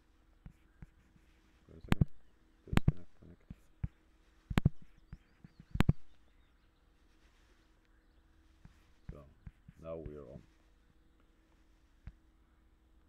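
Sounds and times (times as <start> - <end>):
computer mouse clicking: 2.7 - 3.1, 3.8 - 6.1.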